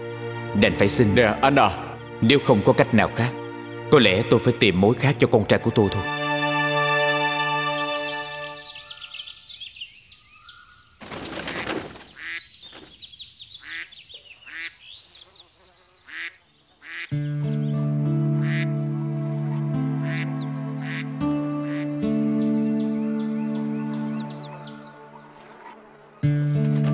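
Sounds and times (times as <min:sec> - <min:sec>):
soundtrack music: 0:00.0 - 0:08.8, 0:17.2 - 0:26.9
birds chirping: 0:07.2 - 0:26.4
ducks quacking: 0:11.4 - 0:12.6, 0:13.6 - 0:17.3, 0:18.3 - 0:22.1.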